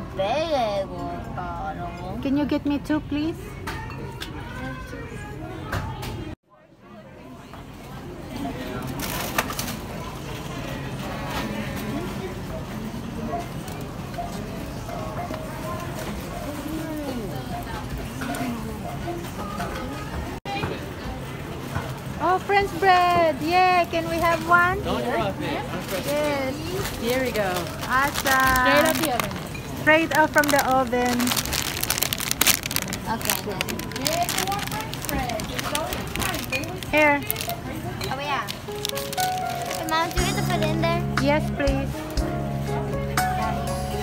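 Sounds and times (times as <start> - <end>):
paper bag crinkling: 25.8 - 40.7.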